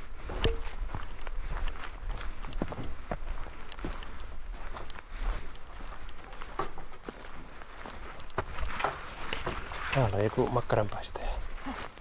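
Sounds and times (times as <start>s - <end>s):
footsteps on forest path: 0.0s - 12.0s.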